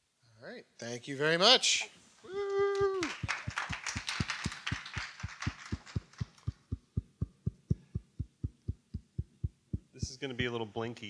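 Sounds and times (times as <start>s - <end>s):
person calling out: 2.3s - 3.1s
audience applauding: 2.7s - 6.9s
repeating low thump: 6.5s - 10.6s.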